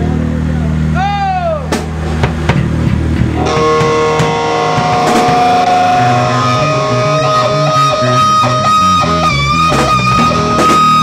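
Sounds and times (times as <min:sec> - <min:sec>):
bass guitar low notes: 0:00.0 - 0:11.0
drum hits: 0:01.7 - 0:11.0
electric guitar ringing chord: 0:03.2 - 0:11.0.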